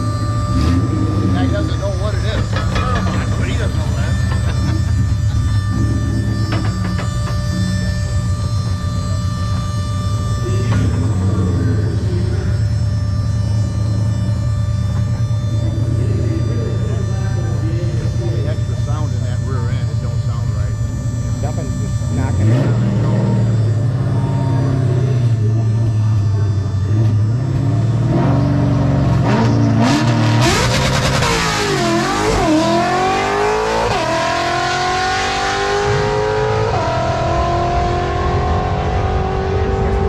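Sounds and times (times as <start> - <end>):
race car engine idling: 0.0 - 35.1.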